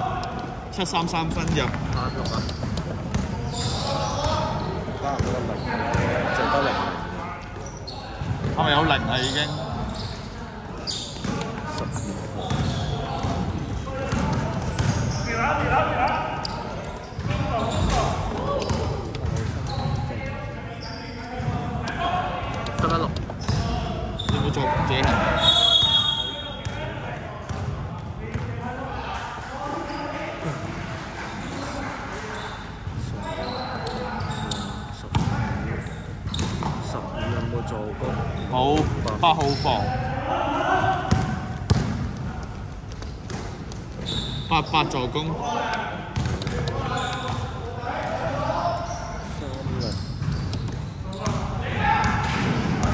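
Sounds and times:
basketball bouncing on court floor: 1.4 - 6.2, 7.5 - 8.7, 10.7 - 15.2, 16.4 - 20.0, 21.4 - 25.8, 27.5 - 28.5, 35.1 - 35.4, 36.2 - 36.8, 38.4 - 39.6, 41.1 - 44.3, 46.2 - 48.2, 49.5 - 52.9
players calling out: 29.8 - 42.7, 43.6 - 52.9.

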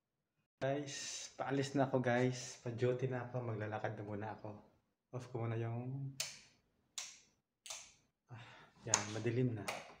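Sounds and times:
light switches clicking: 6.2 - 8.0.

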